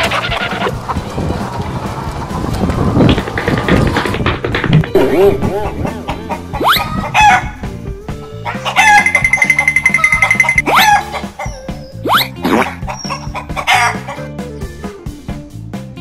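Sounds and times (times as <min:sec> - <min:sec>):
background music: 0:00.0 - 0:16.0
chicken squawking and clucking: 0:05.5 - 0:07.6, 0:08.4 - 0:14.3.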